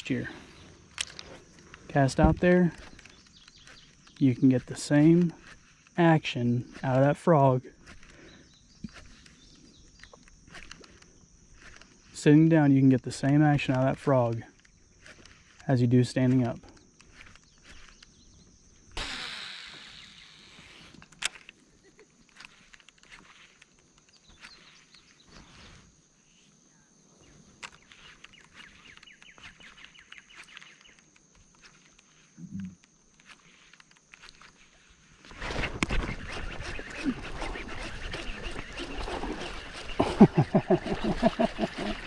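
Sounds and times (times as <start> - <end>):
faint clicks of lure: 0.5 - 6.0, 7.8 - 12.2, 12.8 - 18.9, 20.6 - 25.5, 27.5 - 34.8
fishing reel cranking: 0.9 - 6.1, 8.9 - 12.2, 12.8 - 15.7, 17.0 - 18.1, 18.9 - 21.6, 35.3 - 40.0
fishing line running off reel: 8.9 - 18.2, 18.8 - 25.9, 33.1 - 42.0.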